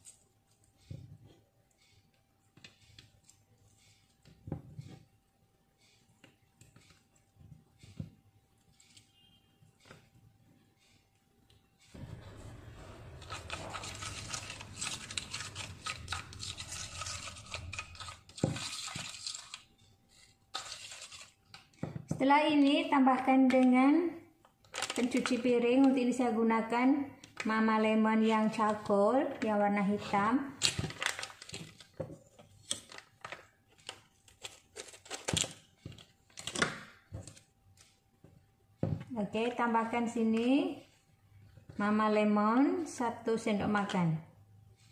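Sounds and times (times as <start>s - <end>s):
spoon scraping sugar in bowl: 13.2s - 19.5s
plastic pouch crinkling: 13.3s - 19.9s, 24.6s - 25.4s, 30.6s - 32.0s.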